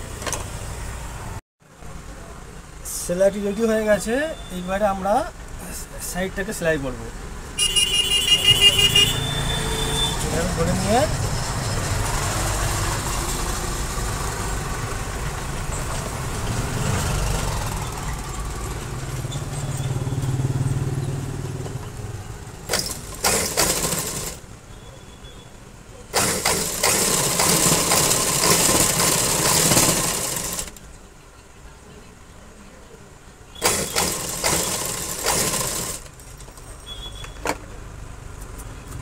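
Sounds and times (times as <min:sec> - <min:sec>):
sewing machine stitching: 0:22.7 - 0:24.4, 0:26.1 - 0:30.8, 0:33.6 - 0:36.2.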